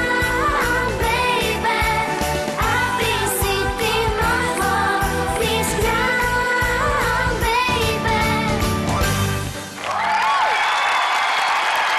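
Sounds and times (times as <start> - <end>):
girls singing pop song: 0.0 - 9.3
backing track: 0.0 - 9.8.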